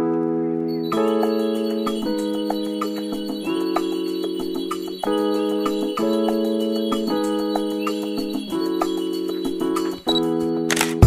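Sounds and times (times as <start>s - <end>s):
sustained keyboard chords: 0.0s - 11.0s
light ticking beat: 0.9s - 10.6s.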